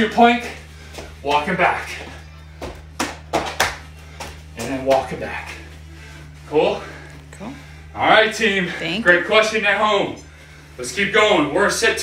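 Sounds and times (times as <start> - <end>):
workout music: 0.0 - 10.1
hands slapping hardwood floor: 2.0 - 5.2.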